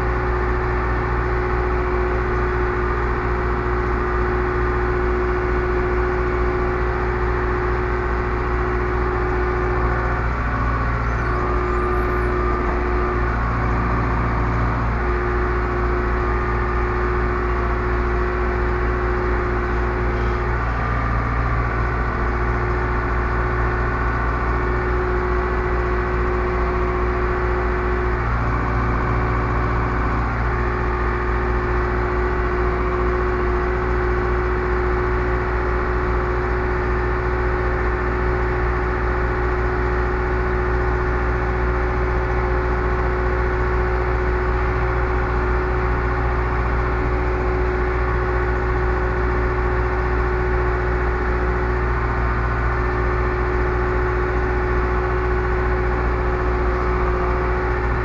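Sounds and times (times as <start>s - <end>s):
tractor diesel engine droning: 0.0s - 58.0s.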